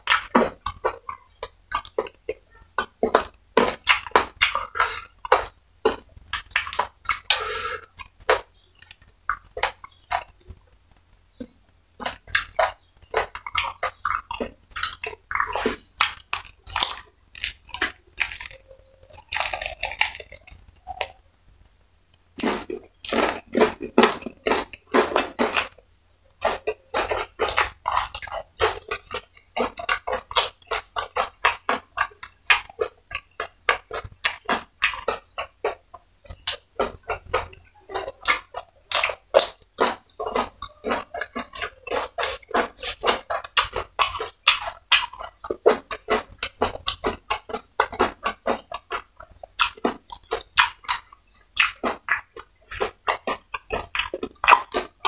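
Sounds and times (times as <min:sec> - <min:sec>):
lip smacking: 0:00.0 - 0:55.0
wet chewing: 0:00.0 - 0:55.0
fast sharp mouth clicks: 0:00.1 - 0:55.0.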